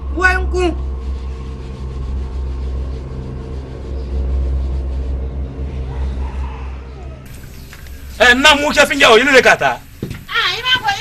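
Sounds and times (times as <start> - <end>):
low steady rumble: 0.0 - 9.0
constant hum: 0.0 - 11.0.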